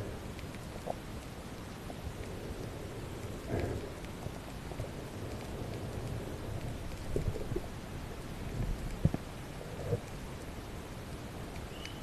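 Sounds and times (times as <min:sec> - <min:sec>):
muffled underwater water rush: 0:00.0 - 0:11.8
faint crackling: 0:00.0 - 0:12.0.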